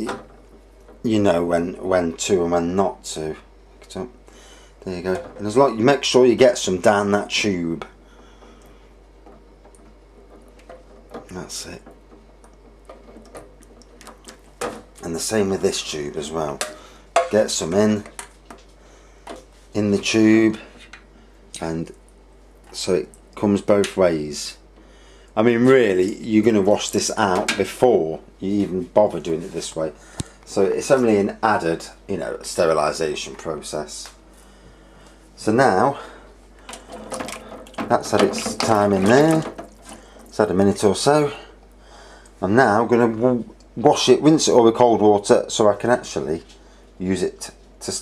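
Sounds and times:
plastic knocking against steel sink: 36.7 - 40.0.

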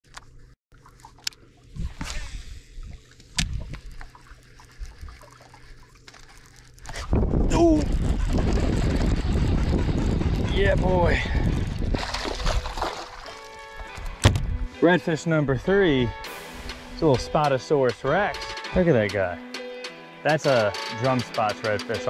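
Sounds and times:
water splashes: 0.7 - 7.7, 11.2 - 14.2
man shouting: 7.5 - 7.9.

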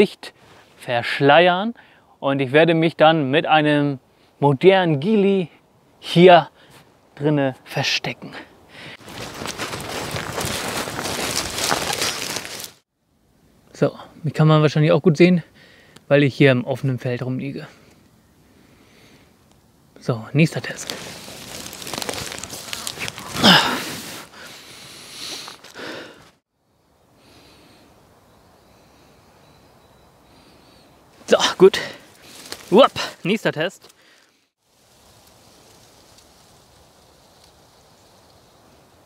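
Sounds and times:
dry leaves rustling and crackling: 9.0 - 12.8, 20.5 - 24.6, 25.3 - 26.3, 31.2 - 34.0, 34.6 - 38.6.

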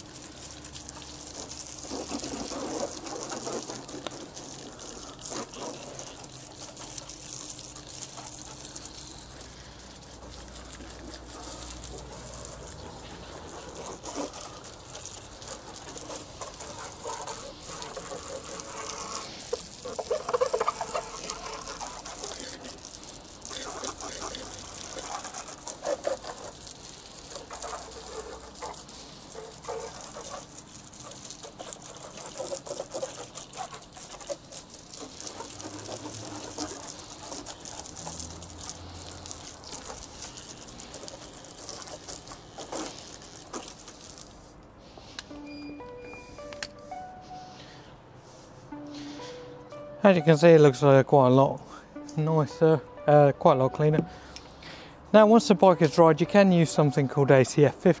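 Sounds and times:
hose water spraying and splashing: 0.0 - 58.0.

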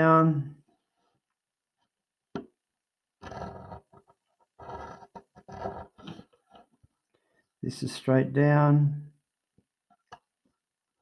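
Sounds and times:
pencil scratching along ruler: 3.2 - 6.7.

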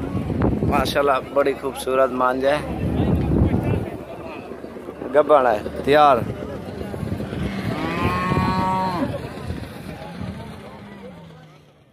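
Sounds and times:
cow mooing: 7.5 - 9.2.

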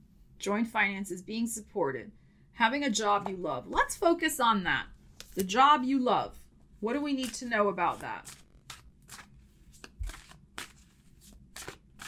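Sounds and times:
cards being shuffled by hand: 7.1 - 12.0.

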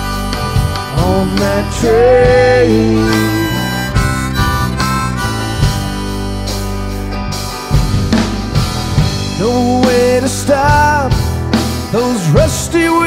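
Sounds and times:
harmonica bending notes: 0.0 - 8.8
drums: 0.0 - 13.0
electric guitars: 0.0 - 13.0.

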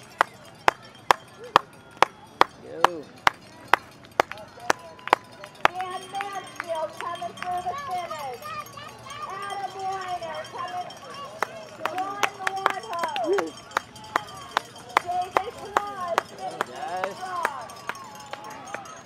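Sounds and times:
spectators cheering: 4.2 - 19.0
person clapping: 11.4 - 19.0.

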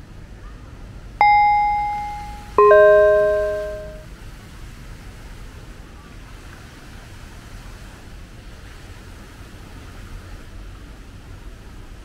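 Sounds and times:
two-note ding-dong chime: 1.2 - 4.0.

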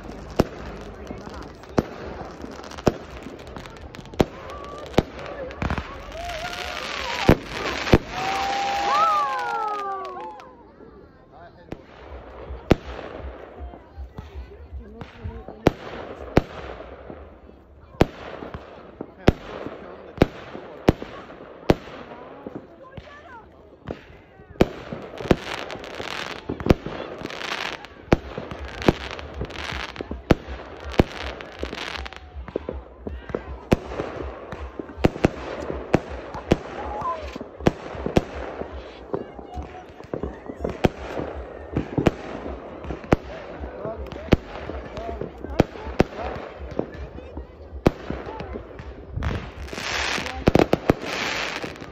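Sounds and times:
fireworks bangs: 0.0 - 51.9.

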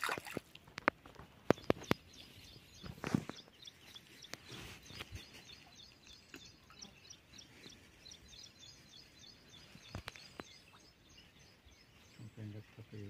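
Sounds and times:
small birds chirping: 0.0 - 13.0
low voice: 12.2 - 13.0.

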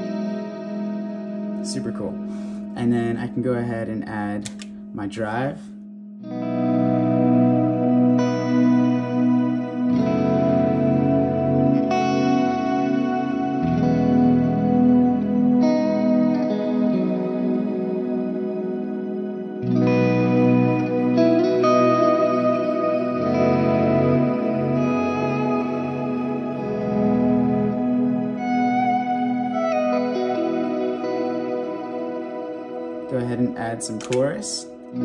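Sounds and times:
electric guitar chords with reverb: 0.0 - 35.0.

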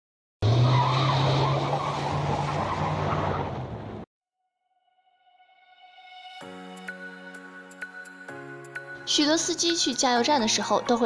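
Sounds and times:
tyre squeal skid: 0.5 - 3.9.

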